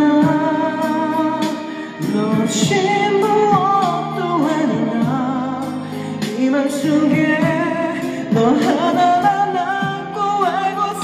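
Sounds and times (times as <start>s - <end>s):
backing track: 0.0s - 11.0s
man singing pop ballad: 0.0s - 11.0s.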